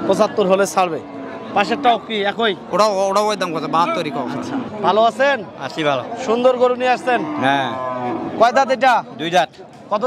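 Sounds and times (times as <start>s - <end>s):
cow mooing: 0.1s - 4.7s, 6.7s - 8.6s.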